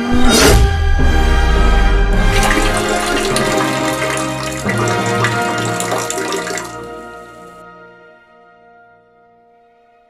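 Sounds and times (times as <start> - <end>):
toilet flushing: 2.2 - 7.5.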